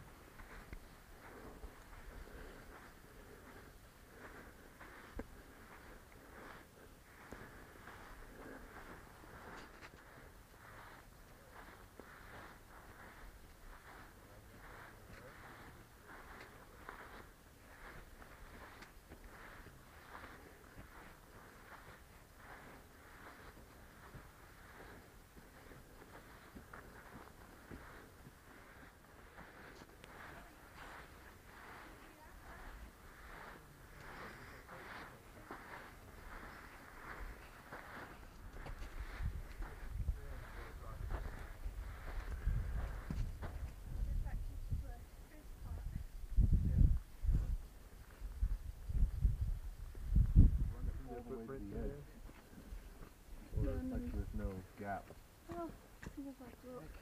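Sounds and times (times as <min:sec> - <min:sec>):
footsteps on dry dirt: 0:00.0 - 0:57.0.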